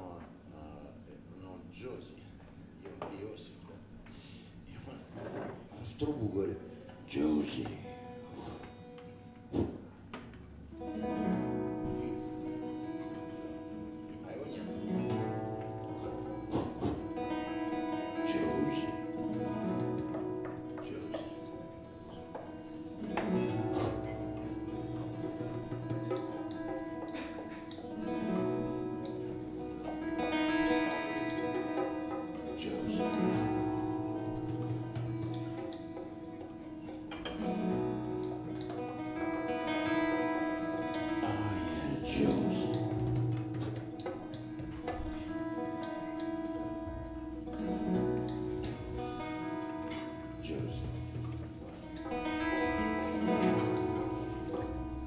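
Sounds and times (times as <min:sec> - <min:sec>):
acoustic guitar: 0:05.0 - 0:55.0
held keyboard chord: 0:10.8 - 0:55.0.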